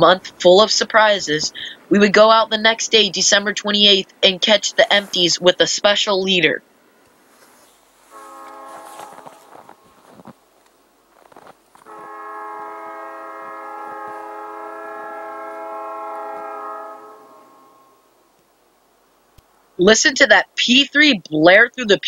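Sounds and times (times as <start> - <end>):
locomotive air horn blaring: 8.0 - 10.3, 11.8 - 18.2.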